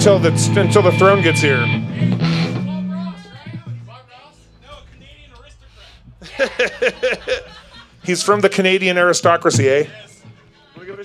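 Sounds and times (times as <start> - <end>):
bass guitar low notes: 0.0 - 3.7, 4.4 - 9.6.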